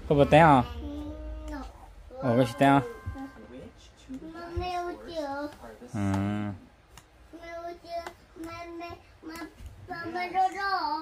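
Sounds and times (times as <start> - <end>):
girl singing softly: 0.6 - 6.4, 7.2 - 11.0.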